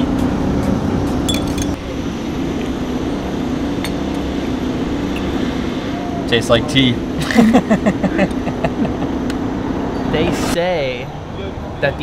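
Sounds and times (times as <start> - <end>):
low street rumble: 0.0 - 12.0
tea glass clinking on saucer: 1.3 - 1.8.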